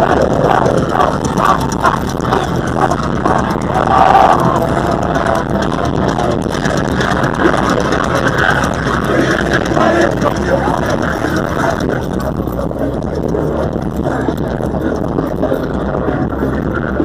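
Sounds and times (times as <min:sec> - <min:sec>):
amplified metal music: 0:00.0 - 0:17.0
crowd noise: 0:00.0 - 0:17.0.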